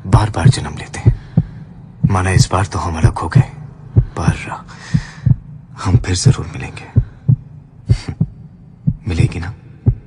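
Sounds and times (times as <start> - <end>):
heartbeat thumps: 0.2 - 6.3, 7.0 - 10.0
breathy hiss: 4.1 - 5.5.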